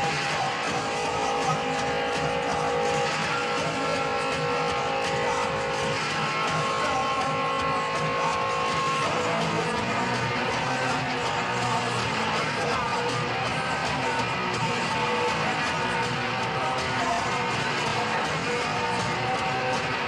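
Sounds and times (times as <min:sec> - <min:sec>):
electric guitar chords: 0:00.0 - 0:20.0
punk band playing live: 0:00.0 - 0:20.0.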